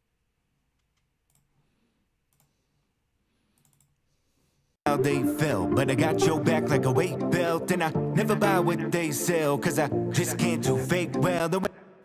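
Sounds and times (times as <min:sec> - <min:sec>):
computer mouse clicks: 0:00.8 - 0:01.5, 0:02.3 - 0:02.6, 0:03.5 - 0:04.0.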